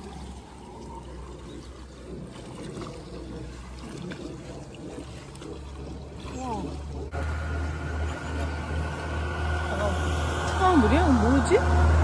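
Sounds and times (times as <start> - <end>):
water sloshing around wading legs: 0.0 - 9.2
spout pouring water: 0.0 - 12.0
steady low rumble: 0.0 - 12.0.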